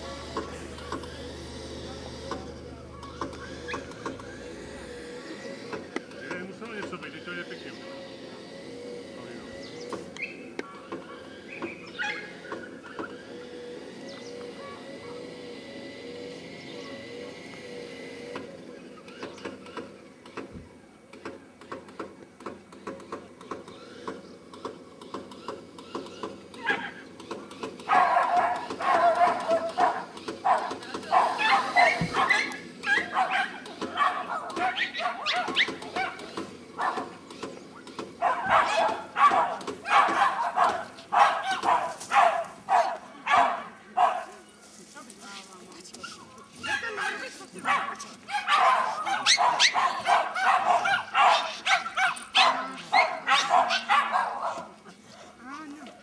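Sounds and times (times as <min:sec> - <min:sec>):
dog yelping and barking: 0:11.9 - 0:12.6, 0:26.6 - 0:27.1, 0:27.8 - 0:37.2, 0:38.2 - 0:44.3, 0:46.0 - 0:54.8.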